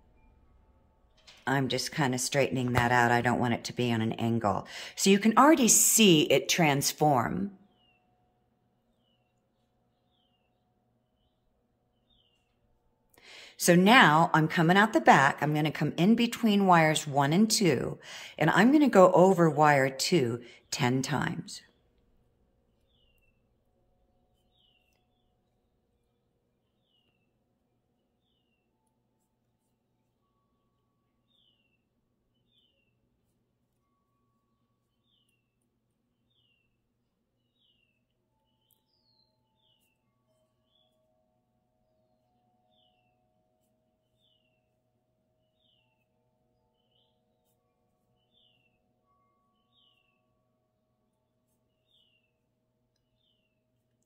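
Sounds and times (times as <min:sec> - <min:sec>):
distant bird chirping: 0:08.9 - 0:12.6, 0:15.1 - 0:23.6, 0:24.4 - 0:27.4, 0:30.3 - 0:33.0, 0:34.8 - 0:41.1.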